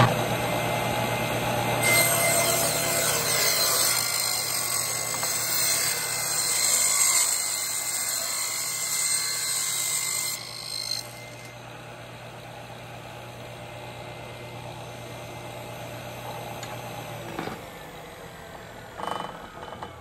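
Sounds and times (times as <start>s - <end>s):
table saw cutting wood: 0.0s - 20.0s
table saw running idle: 0.0s - 20.0s.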